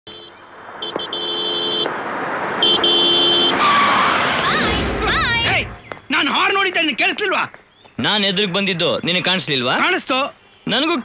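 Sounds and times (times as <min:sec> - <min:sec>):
two-tone car horn honking: 0:00.0 - 0:02.0, 0:02.6 - 0:03.6
rush of noise: 0:00.4 - 0:06.1.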